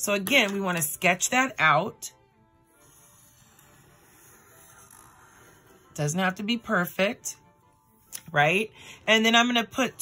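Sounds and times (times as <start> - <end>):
quiet background music: 0.0 - 10.0
marker scratching on paper: 2.7 - 6.4.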